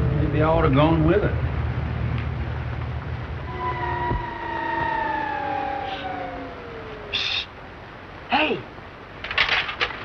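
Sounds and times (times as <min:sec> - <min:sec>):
held tones sliding down: 0:03.5 - 0:07.6.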